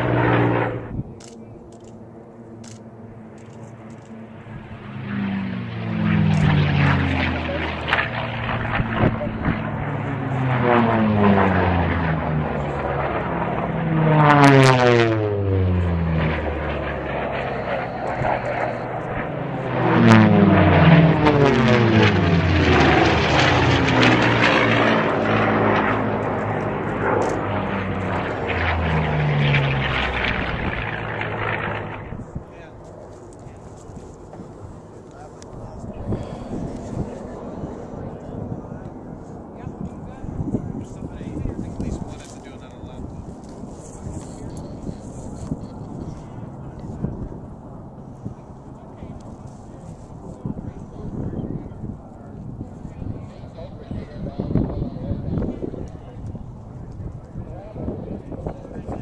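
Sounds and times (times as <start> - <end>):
propeller planes flying past: 0.0 - 59.0.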